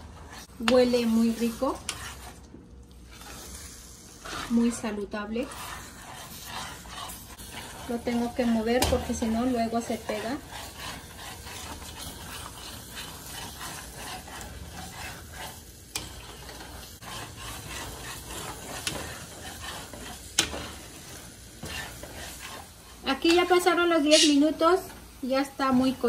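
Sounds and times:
metal utensil stirring in pan: 0.0 - 26.0
frying sizzle: 2.9 - 26.0.

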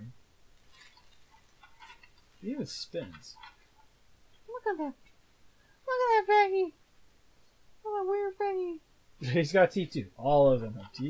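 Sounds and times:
plastic toys and bag rustling: 0.6 - 3.8.

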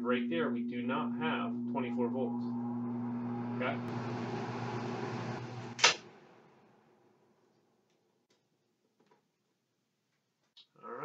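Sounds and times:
furnace electrical hum: 0.0 - 6.4.

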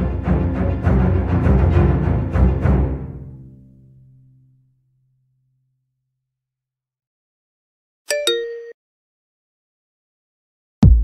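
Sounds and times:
bell-like chime notes: 8.1 - 8.8.

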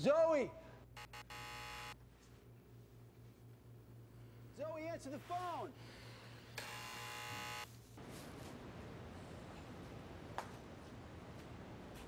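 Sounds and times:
phone vibrating on wooden table: 1.0 - 2.0, 6.6 - 7.7.

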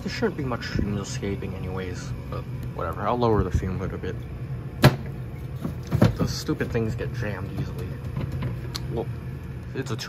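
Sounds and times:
steady low hum: 0.0 - 10.0
fume hood sash knocking: 4.8 - 6.3.

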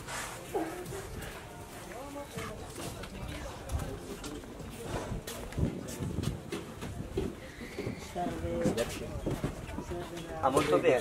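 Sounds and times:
indistinct background voices: 0.0 - 11.0.

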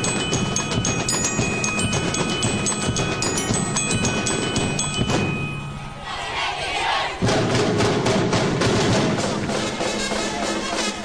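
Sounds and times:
loud drum-driven dance music: 0.0 - 5.7, 7.2 - 11.0
crowd shouting together: 5.9 - 7.4.

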